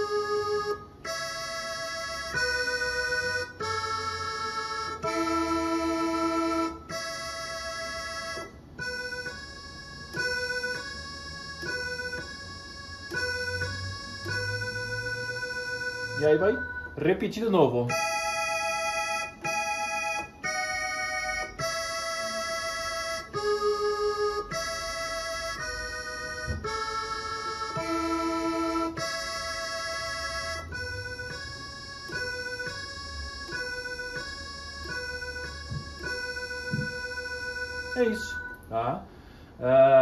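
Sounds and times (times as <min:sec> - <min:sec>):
keyboard playing accordion organ melody: 0:00.0 - 0:40.0.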